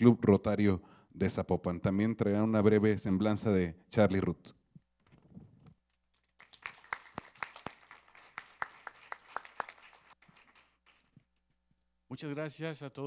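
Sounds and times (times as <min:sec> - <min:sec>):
audience applause: 0:06.4 - 0:11.1.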